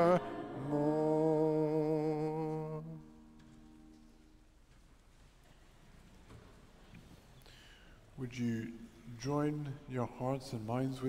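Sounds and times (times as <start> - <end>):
congregation singing a hymn: 0.0 - 3.6.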